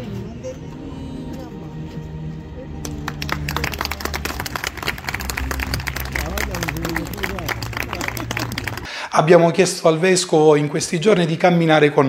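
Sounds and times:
background music: 0:00.0 - 0:10.2
crowd applauding: 0:02.8 - 0:09.0.

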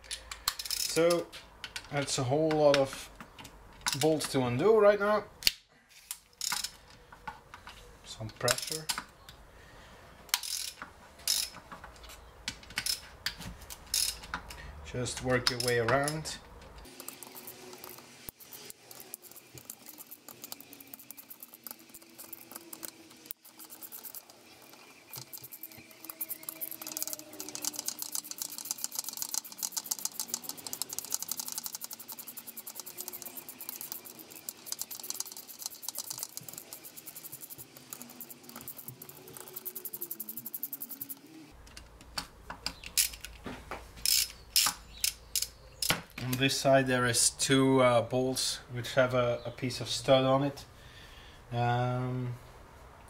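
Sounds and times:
ratchet wrench clicking: 0:10.3 - 0:11.6, 0:13.9 - 0:14.3, 0:15.4 - 0:41.2, 0:44.0 - 0:45.9.

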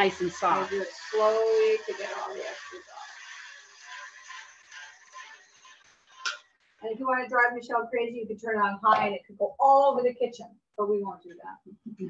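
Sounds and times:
electric blender whirring: 0:00.0 - 0:06.6.

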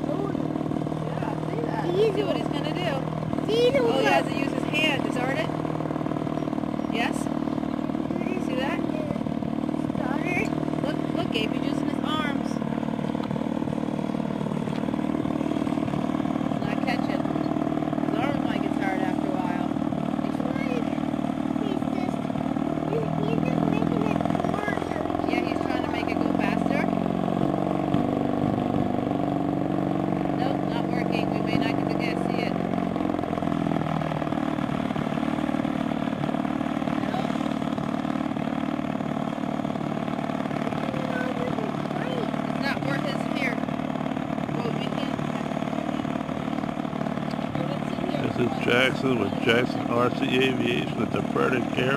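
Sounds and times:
gyrocopter engine running: 0:00.0 - 0:51.9.

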